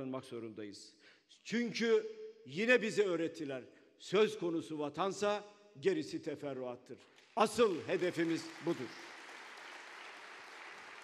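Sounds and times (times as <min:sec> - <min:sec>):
distant audience applause: 0:07.4 - 0:11.0.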